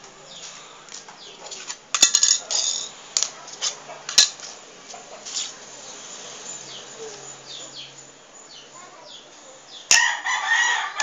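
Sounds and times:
rooster crowing: 9.9 - 11.0.

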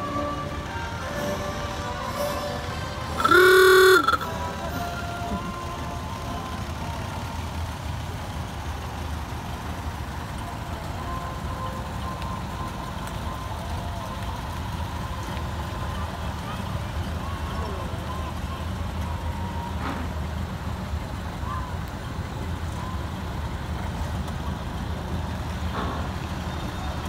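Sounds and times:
rumble of slow vehicles: 0.0 - 27.0
vehicle horn blast: 3.2 - 4.4.

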